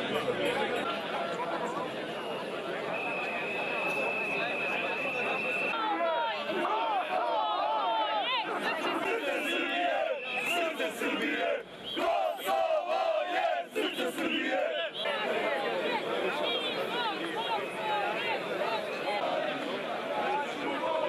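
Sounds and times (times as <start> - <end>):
crowd shouting: 0.0 - 21.0
high whistle-like tone: 2.3 - 5.8.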